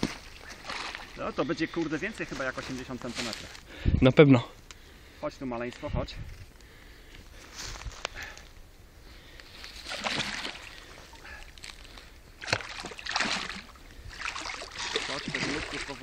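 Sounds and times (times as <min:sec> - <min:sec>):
fish thrashing and splashing: 0:00.0 - 0:01.2, 0:09.6 - 0:16.0.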